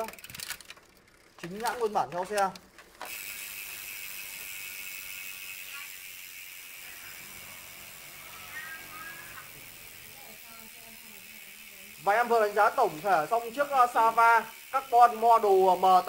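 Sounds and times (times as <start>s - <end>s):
bike chain drivetrain hissing: 0.0s - 16.0s
faint voice: 8.1s - 9.6s.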